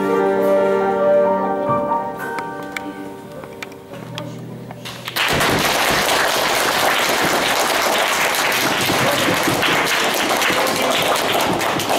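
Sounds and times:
children's audience applauding: 0:05.0 - 0:11.9.

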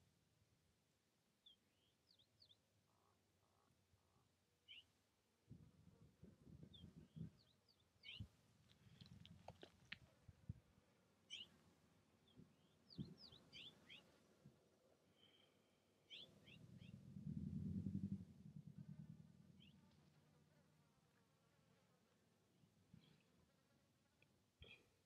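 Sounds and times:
small birds chirping: 0:01.4 - 0:05.0, 0:06.6 - 0:10.0, 0:11.2 - 0:14.3, 0:15.0 - 0:20.2, 0:22.9 - 0:23.5
faint low rumbling: 0:15.6 - 0:21.2.

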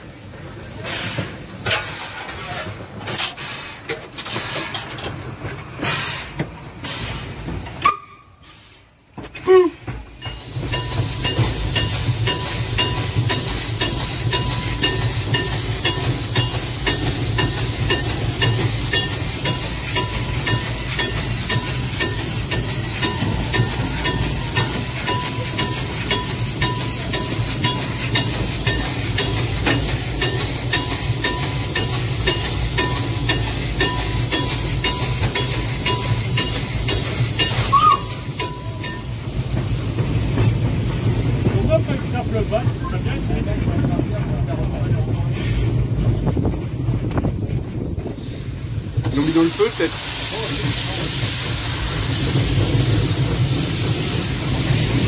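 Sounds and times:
steam locomotive hissing and rumbling: 0:00.0 - 0:55.0.

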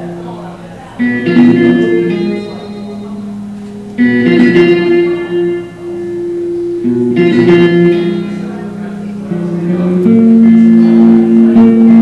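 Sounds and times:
acoustic guitar chords ringing: 0:00.0 - 0:12.0.

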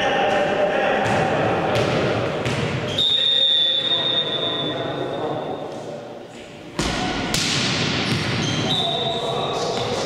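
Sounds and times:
referee's whistle blast: 0:02.9 - 0:04.7.

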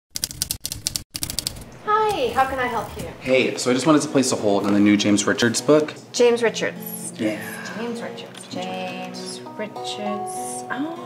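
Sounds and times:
typewriter keys clacking: 0:00.1 - 0:01.7.

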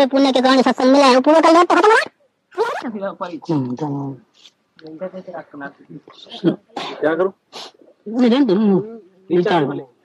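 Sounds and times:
man speaking: 0:02.9 - 0:10.0.

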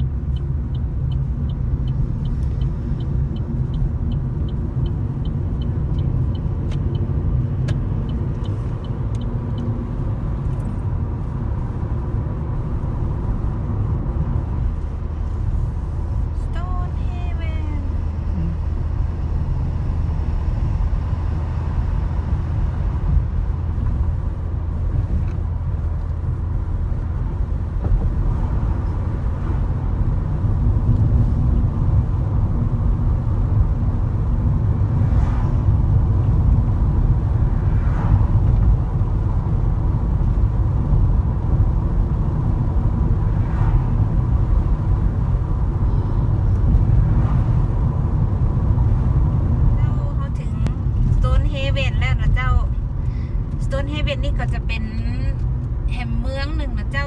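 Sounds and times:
car engine and tyre rumble: 0:00.0 - 0:57.0.

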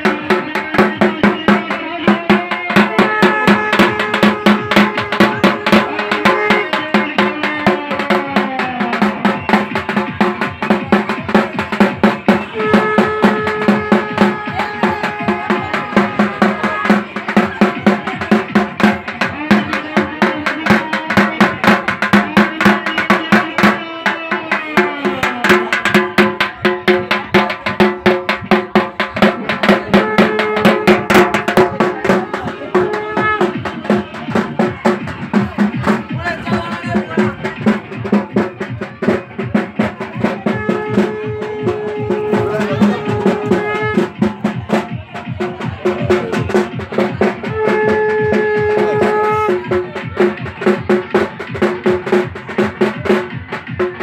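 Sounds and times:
fast dense drumming: 0:00.0 - 0:54.0.

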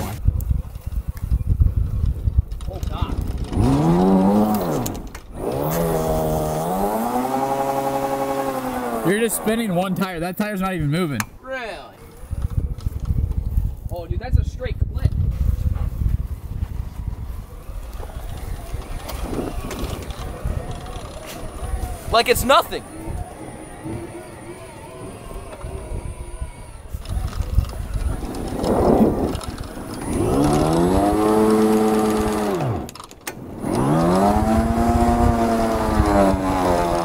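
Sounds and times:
golf cart tire spinning in snow: 0:00.0 - 0:10.2, 0:11.6 - 0:37.0
wavering drive whine: 0:16.3 - 0:37.0.

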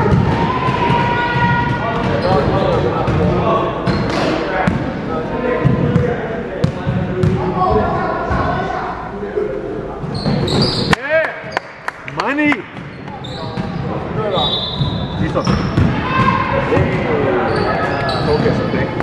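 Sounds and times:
voices talking: 0:00.0 - 0:19.0.

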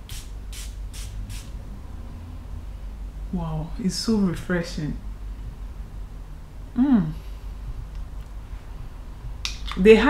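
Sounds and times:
perfume atomiser spraying: 0:00.0 - 0:01.5.

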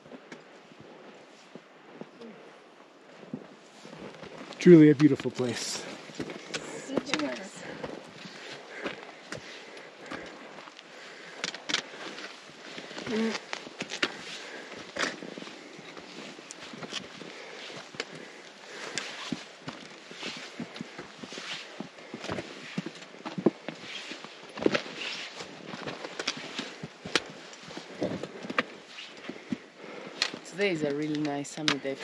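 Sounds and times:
footsteps on loose rock and gravel: 0:03.1 - 0:32.0.

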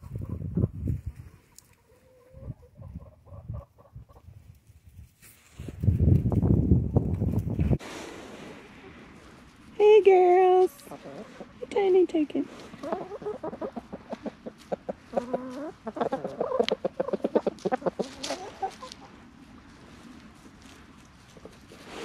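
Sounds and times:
chickens clucking: 0:00.0 - 0:04.4, 0:10.7 - 0:19.6.

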